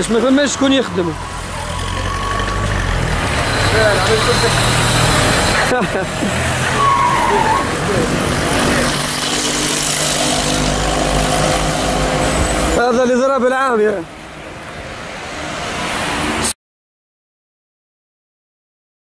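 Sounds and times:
people's voices: 0:00.0 - 0:09.2
cars passing close by: 0:00.0 - 0:16.6.

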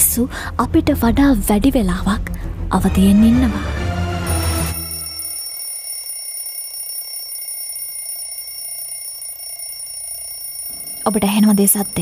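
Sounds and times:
high-pitched ringing tones: 0:04.3 - 0:12.0.

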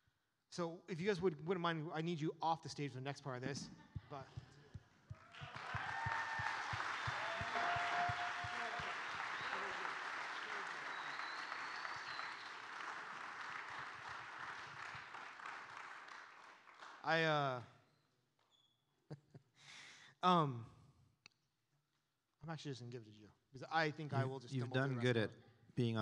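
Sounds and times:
crowd applauding: 0:05.0 - 0:17.4
voices calling out: 0:05.6 - 0:12.3.

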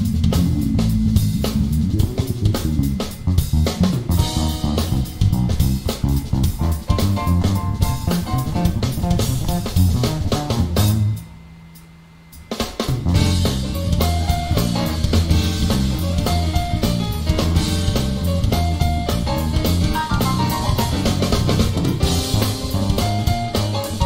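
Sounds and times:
jazz fusion band playing: 0:00.0 - 0:11.2, 0:12.8 - 0:24.0
electric bass guitar: 0:00.0 - 0:11.4, 0:12.8 - 0:24.0
busy drum kit: 0:00.0 - 0:24.0.

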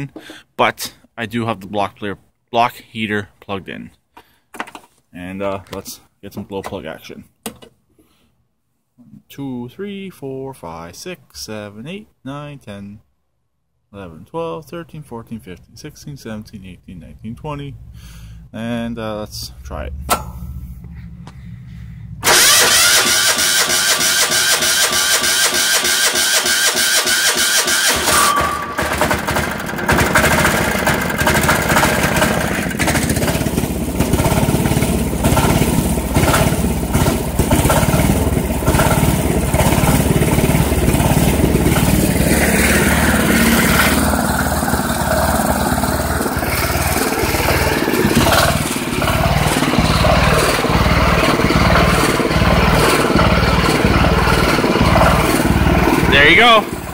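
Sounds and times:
diesel engine running: 0:19.5 - 0:56.9
starter motor cranking: 0:22.2 - 0:56.9.

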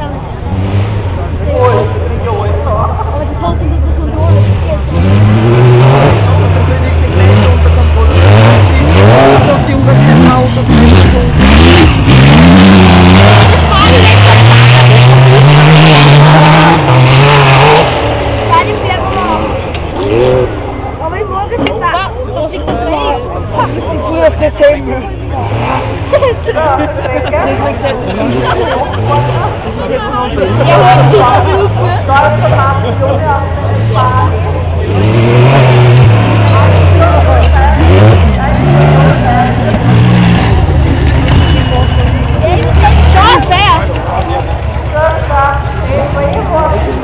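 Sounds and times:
racing buggy engine revving: 0:00.0 - 0:47.0.

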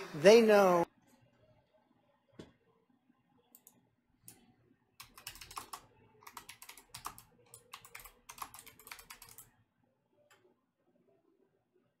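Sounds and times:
typing on computer keyboard: 0:05.0 - 0:09.5.

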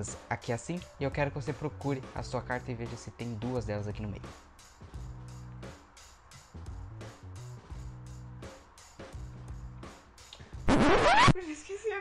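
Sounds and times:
music with held chords and beat: 0:00.0 - 0:11.3.

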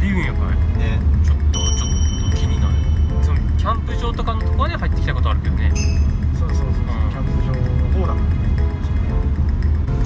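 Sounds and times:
background music: 0:00.0 - 0:10.0
car road and engine rumble: 0:00.0 - 0:10.0
high bell-like ringing tone: 0:01.5 - 0:03.3, 0:05.8 - 0:06.4.

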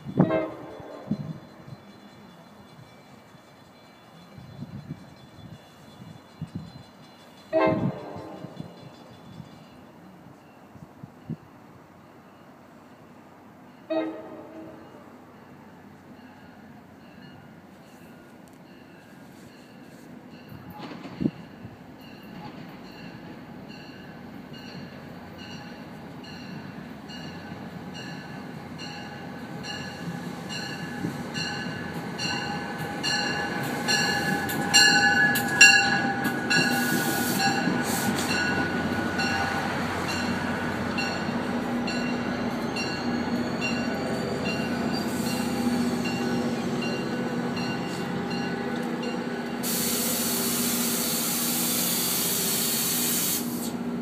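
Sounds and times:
train rolling in: 0:00.0 - 0:54.0
bell ringing: 0:28.0 - 0:39.5.

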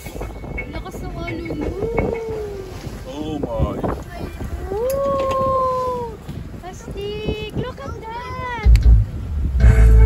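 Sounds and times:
boat rumble: 0:00.0 - 0:10.0.

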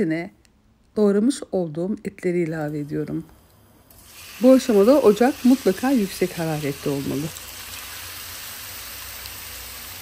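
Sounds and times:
meat sizzling in hot oil: 0:03.9 - 0:10.0.

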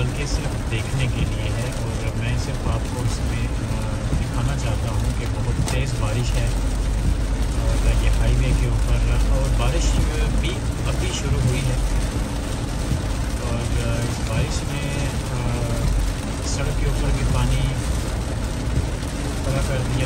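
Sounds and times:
person talking: 0:00.0 - 0:06.6, 0:07.5 - 0:12.1, 0:13.4 - 0:17.9, 0:19.5 - 0:20.0
heavy rain on car: 0:00.0 - 0:20.0
in-cabin road noise: 0:00.0 - 0:20.0
low rumble: 0:00.0 - 0:20.0.

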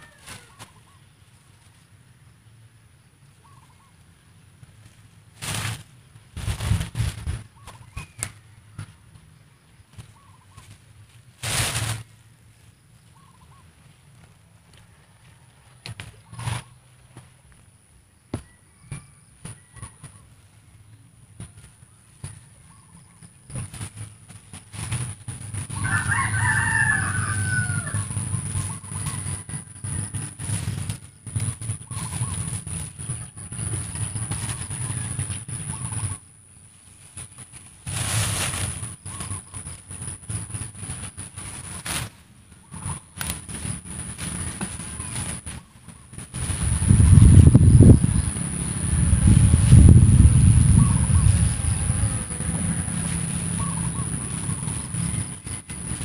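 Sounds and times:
rooster crowing: 0:00.0 - 0:00.6, 0:25.7 - 0:30.2, 0:50.8 - 0:54.2
low rumbling microphone noise: 0:42.7 - 0:56.0.

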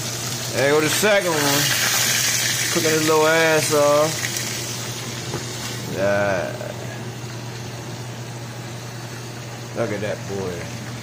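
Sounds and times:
fish sizzling in oil: 0:00.0 - 0:09.6.

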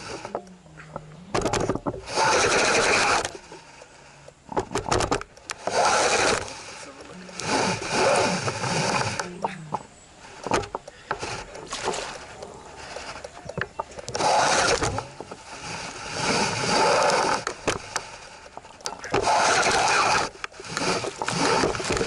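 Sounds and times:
rod knocks and clicks: 0:00.1 - 0:02.0, 0:10.4 - 0:15.4
fishing reel grinding: 0:02.0 - 0:04.3, 0:05.4 - 0:09.3, 0:12.2 - 0:22.0.

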